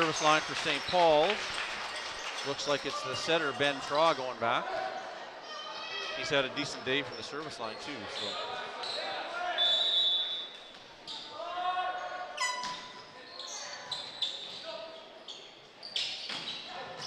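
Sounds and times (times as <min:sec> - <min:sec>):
sneakers squeaking on court: 0:12.0 - 0:17.0.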